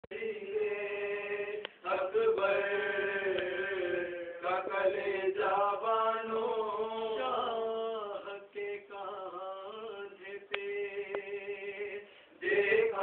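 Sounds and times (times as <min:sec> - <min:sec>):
men chanting: 0:00.1 - 0:13.0.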